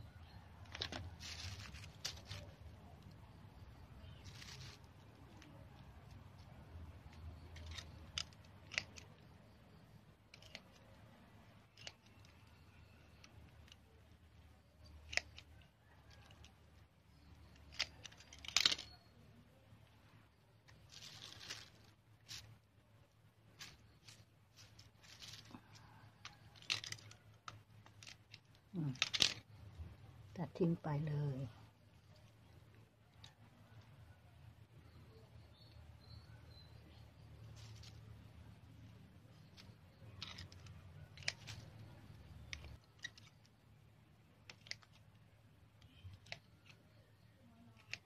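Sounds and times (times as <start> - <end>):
stems being snipped: 4.0 - 9.7, 10.3 - 13.9, 14.6 - 16.5, 37.5 - 43.6, 45.8 - 48.0.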